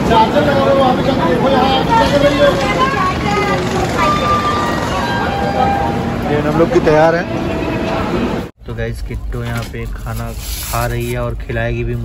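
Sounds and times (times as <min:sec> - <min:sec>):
people talking: 0:00.0 - 0:12.0
railway platform din: 0:00.0 - 0:12.0.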